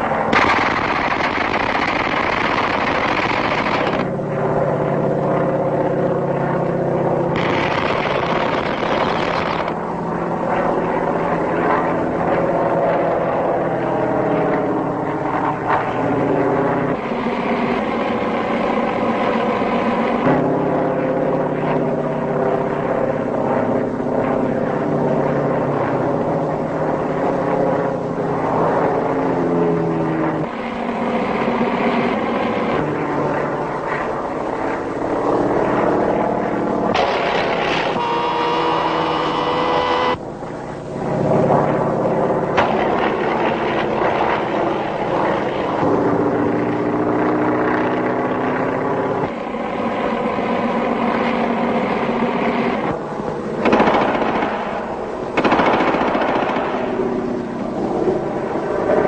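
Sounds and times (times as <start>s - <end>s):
high whine: 0.0s - 24.9s, 28.7s - 49.8s
propeller aircraft engines droning: 0.0s - 59.0s.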